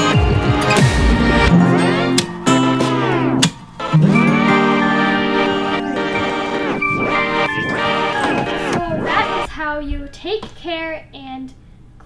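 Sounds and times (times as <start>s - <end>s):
guitar background music: 0.0s - 9.5s.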